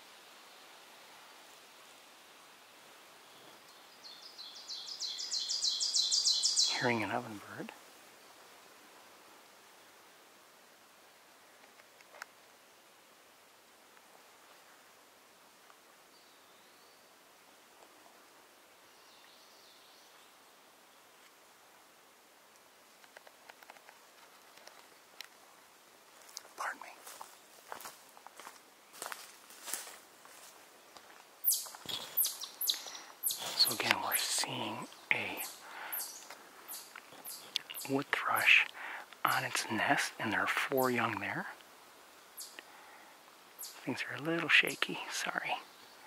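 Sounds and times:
faint distant birdsong: 0.0s - 46.0s
close clicks and rustling: 11.6s - 12.4s, 22.5s - 25.4s.

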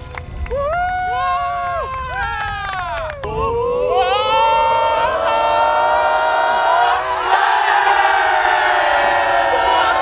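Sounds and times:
group of players cheering: 0.1s - 10.0s.

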